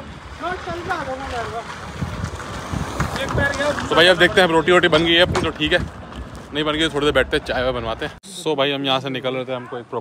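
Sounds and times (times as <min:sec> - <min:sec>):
wind buffeting microphone: 0:00.0 - 0:08.1.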